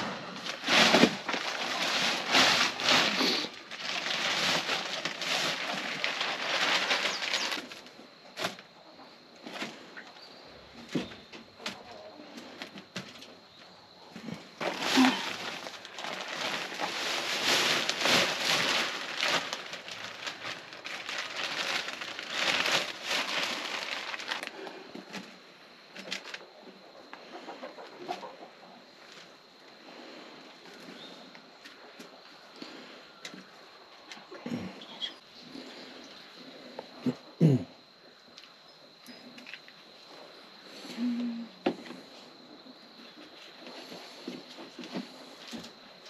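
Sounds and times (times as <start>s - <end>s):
soil rustling and patting: 0.4s - 7.8s, 14.3s - 24.5s
soil pouring from bag: 0.4s - 7.9s, 14.6s - 24.6s.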